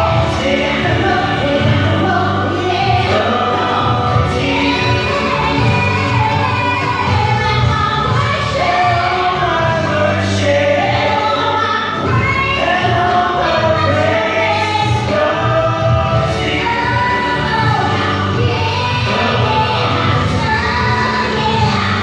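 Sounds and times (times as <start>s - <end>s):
woman singing gospel song: 0.0s - 22.0s.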